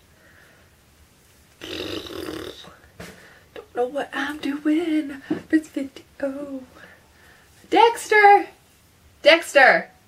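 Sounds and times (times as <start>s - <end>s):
woman making burp-like noise: 1.6s - 2.7s.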